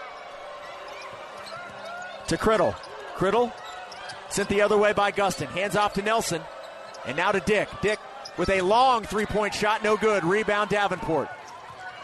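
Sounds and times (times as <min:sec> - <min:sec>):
shoe squeaks: 0:00.9 - 0:04.7.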